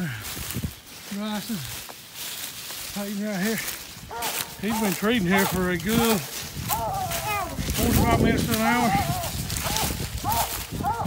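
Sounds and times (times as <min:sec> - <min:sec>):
footsteps through leaf litter: 0:00.0 - 0:11.0
person speaking: 0:02.9 - 0:10.6
twigs snapping: 0:03.6 - 0:11.0.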